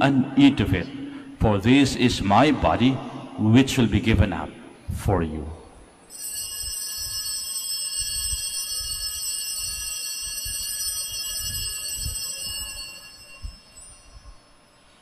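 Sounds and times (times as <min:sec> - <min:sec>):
altar bells ringing: 0:06.1 - 0:15.0.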